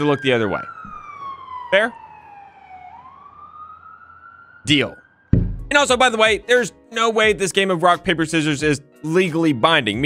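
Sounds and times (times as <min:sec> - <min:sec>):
police siren wailing: 0:00.0 - 0:06.1.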